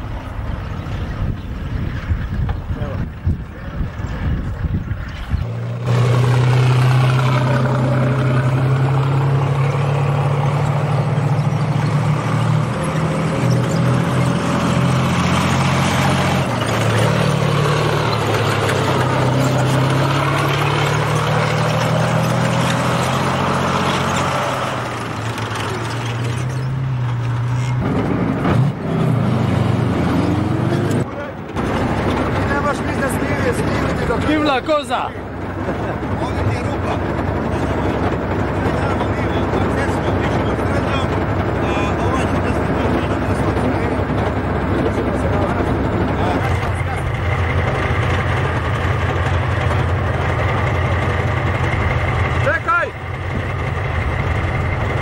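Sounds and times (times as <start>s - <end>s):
tank diesel engine running: 0.0s - 55.0s.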